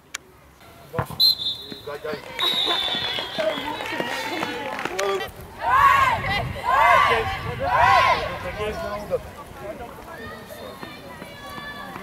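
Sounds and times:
players chattering: 0.0s - 12.0s.

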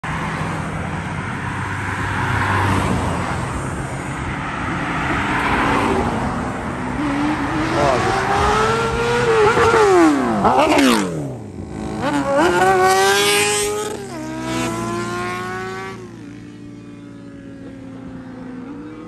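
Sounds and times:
cars passing on road: 0.0s - 19.0s
motorcycle engine accelerating: 6.7s - 19.0s.

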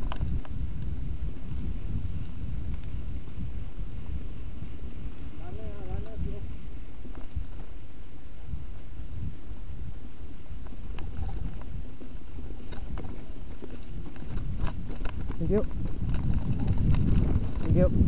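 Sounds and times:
bike clicks and rattles: 0.0s - 1.0s, 10.6s - 18.0s
mountain bike rolling on dirt: 0.0s - 18.0s
wind buffeting microphone: 0.0s - 18.0s.

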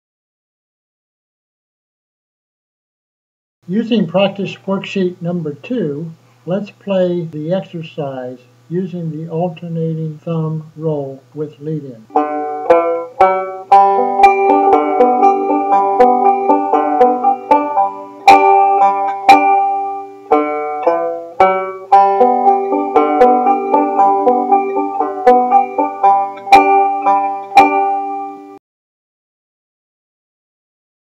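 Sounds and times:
banjo fingerpicked: 12.1s - 28.6s.

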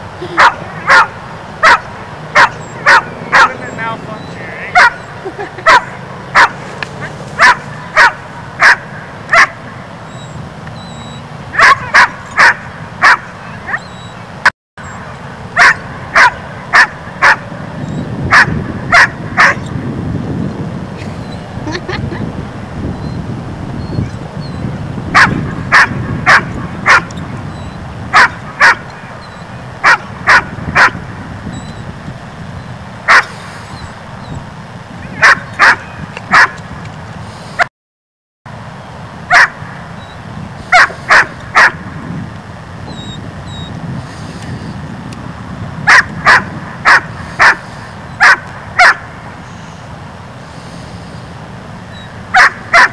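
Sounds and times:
dog barking: 0.4s - 3.6s, 4.8s - 6.6s, 7.4s - 9.6s, 11.6s - 13.8s, 15.6s - 17.4s, 18.3s - 19.6s, 25.2s - 27.1s, 28.2s - 28.8s, 29.8s - 31.0s, 33.1s - 33.3s, 35.2s - 36.6s, 39.3s - 39.6s, 40.7s - 41.8s, 45.9s - 47.6s, 48.2s - 49.0s, 52.4s - 52.9s.

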